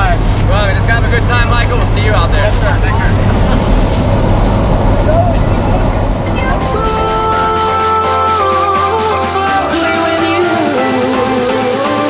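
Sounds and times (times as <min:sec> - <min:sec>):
airplane engine and propeller drone: 0:00.0 - 0:09.4
rushing air: 0:00.1 - 0:09.7.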